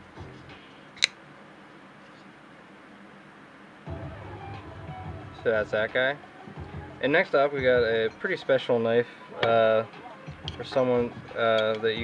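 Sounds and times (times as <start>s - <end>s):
soft handling noise: 1.0s - 2.4s.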